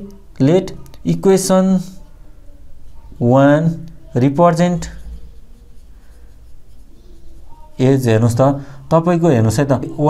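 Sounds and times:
marker scratching on whiteboard: 2.6 - 8.6.

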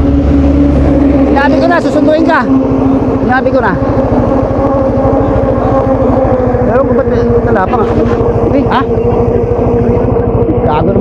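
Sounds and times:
steady hum: 0.0 - 11.0
vehicle engine cruising: 0.0 - 11.0.

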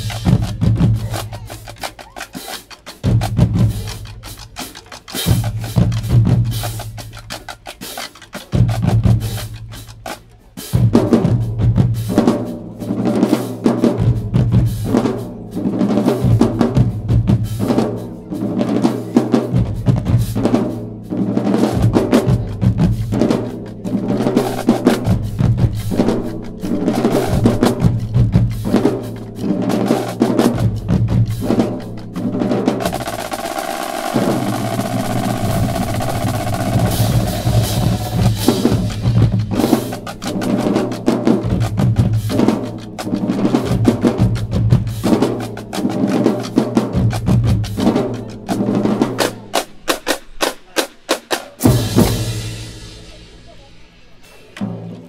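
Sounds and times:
marching drumline cadence: 0.0 - 55.0.

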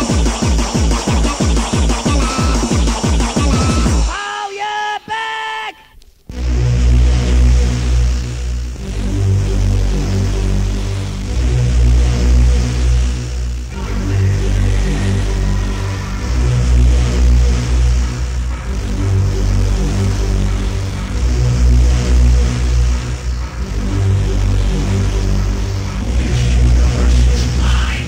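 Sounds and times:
hardcore techno dj mix: 0.0 - 28.0.

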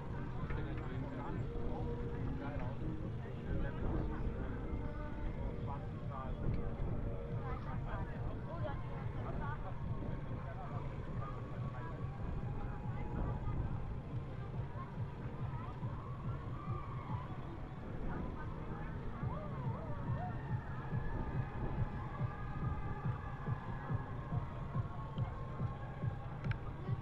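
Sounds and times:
indistinct voices of cyclists: 0.0 - 27.0
wind rumble on microphone: 0.0 - 27.0.

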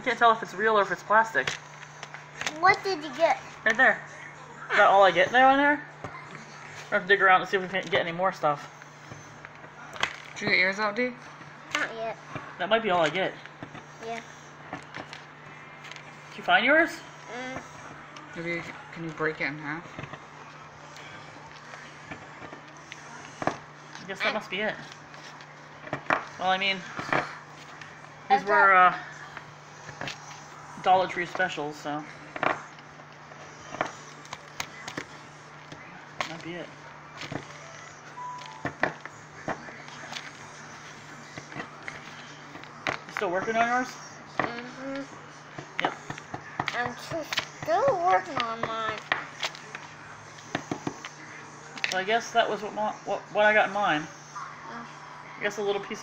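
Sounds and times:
steady low hum: 0.0 - 56.0.

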